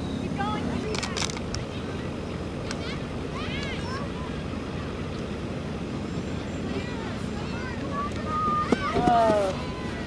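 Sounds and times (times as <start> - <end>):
distant high-pitched shouts: 6.1 - 10.0.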